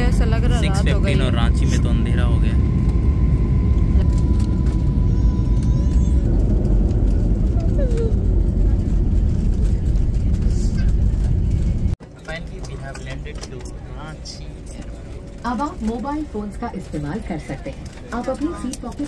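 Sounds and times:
jet cabin rumble: 0.0s - 19.0s.

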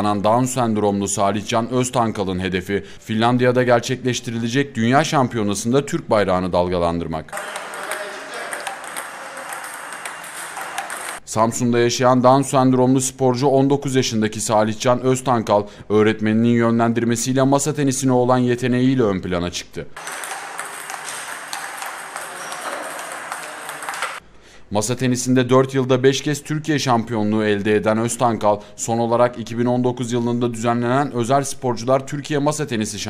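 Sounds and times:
table tennis balls clicking: 7.4s - 11.2s, 20.0s - 24.2s.

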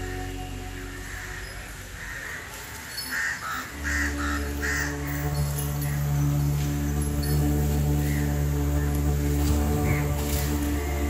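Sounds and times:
bird call: 0.0s - 11.0s
low drone of background music: 0.0s - 11.0s.

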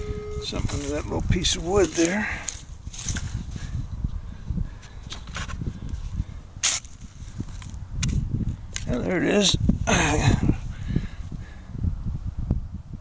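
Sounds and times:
hand digger scraping soil: 0.0s - 3.5s.

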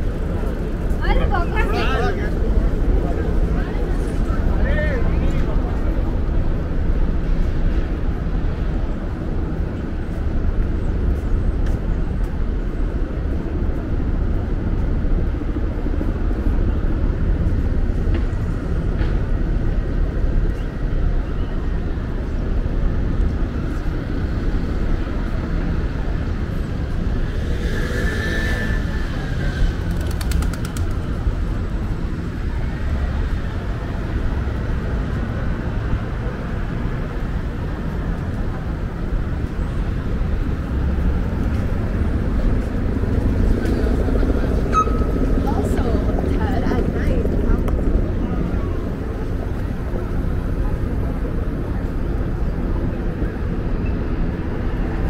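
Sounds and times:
traffic hum: 0.0s - 55.0s
brief high squeal: 44.7s - 45.1s.

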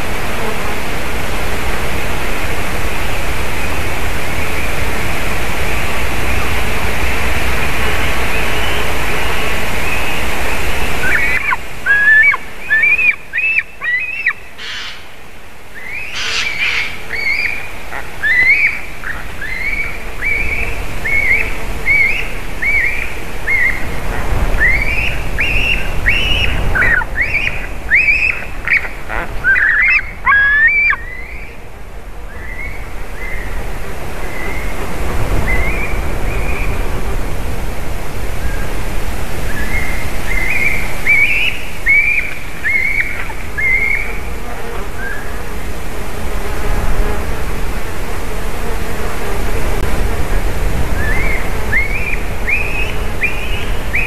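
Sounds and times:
young eagle begging cries: 11.0s - 15.1s, 15.8s - 17.6s, 18.2s - 23.8s, 24.6s - 31.4s.

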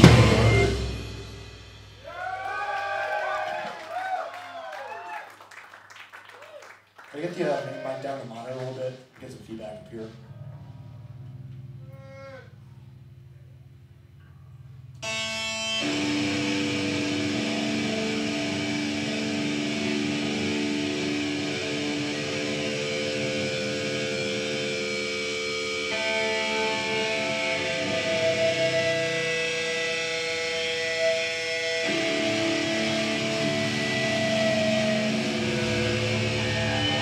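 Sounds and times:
metal band playing chords: 0.0s - 2.1s, 15.0s - 37.0s
low hum: 9.7s - 15.0s.

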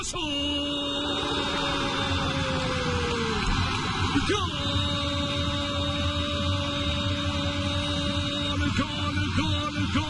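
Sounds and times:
commentator's long shout: 0.0s - 6.6s
stadium background noise: 0.0s - 10.0s
low hum: 0.6s - 10.0s.

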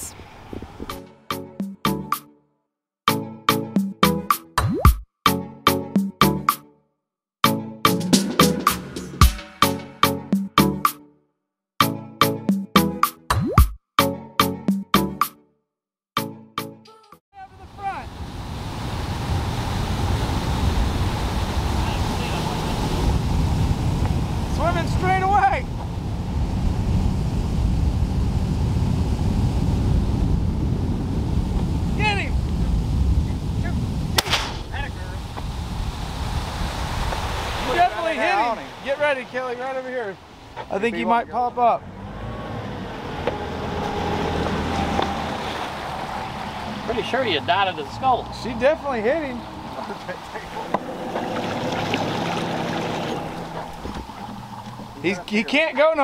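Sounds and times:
wind rumble on microphone: 0.0s - 1.0s, 17.7s - 38.1s
water rushing along hull: 17.4s - 56.0s
rifle shot: 34.2s - 34.7s
boat motor running: 42.6s - 55.6s.

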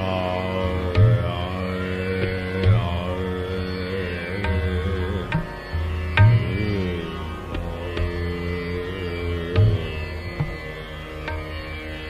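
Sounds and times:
man singing long notes: 0.0s - 10.7s
tanpura drone: 0.0s - 12.0s
deep tabla strokes: 4.4s - 11.5s.

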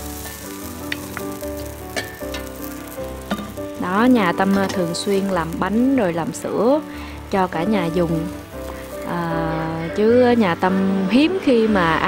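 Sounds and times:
batter sizzling in frying pan: 0.0s - 11.7s
soft instrumental music: 0.0s - 12.0s.

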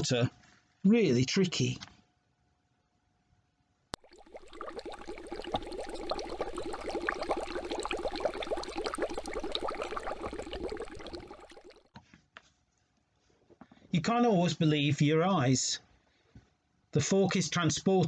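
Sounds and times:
bubbling fizzing liquid: 4.0s - 11.9s.

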